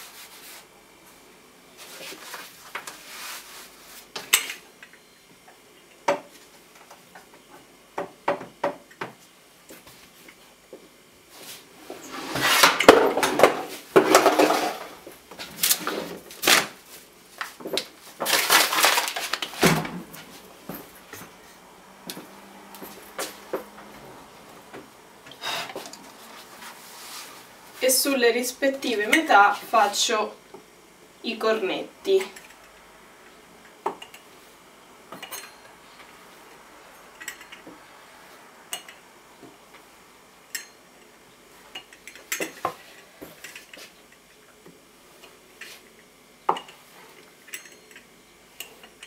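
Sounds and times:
dough rustling and scraping: 0.0s - 1.2s, 1.8s - 4.2s, 11.3s - 12.8s, 25.4s - 28.0s.

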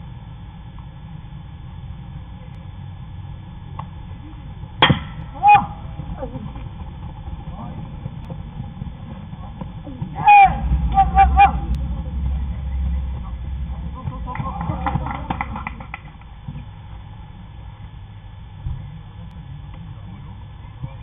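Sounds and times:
ballplayers shouting: 4.8s - 6.6s, 9.9s - 15.8s.

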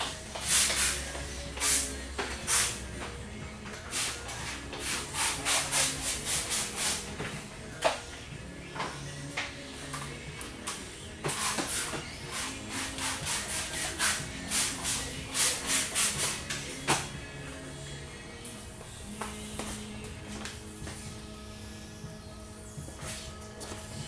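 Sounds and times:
background music: 0.0s - 24.0s.

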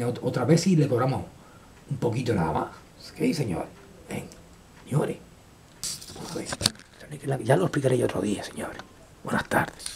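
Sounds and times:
camera handling rustle: 5.8s - 7.0s.

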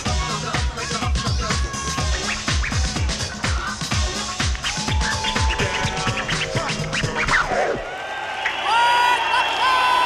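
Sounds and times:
hip-hop music: 0.0s - 7.9s
turntable scratching: 0.2s - 7.9s
audience cheering and whooping: 4.5s - 10.0s.

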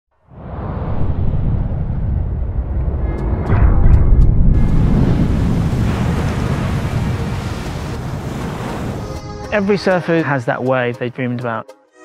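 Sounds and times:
cinematic trailer music: 0.3s - 10.7s
ocean waves breaking: 4.4s - 10.6s.

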